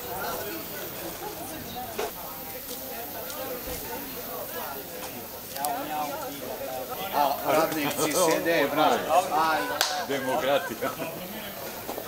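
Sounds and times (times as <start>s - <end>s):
people talking in crowd: 0.0s - 12.0s.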